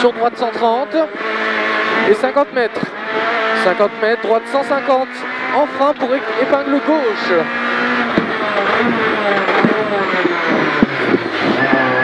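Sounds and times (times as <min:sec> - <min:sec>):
car engine revs falling: 0:00.0 - 0:12.0.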